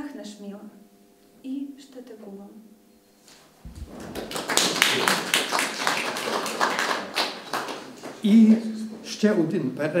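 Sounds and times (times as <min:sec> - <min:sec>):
audience applauding: 0:03.7 - 0:08.2.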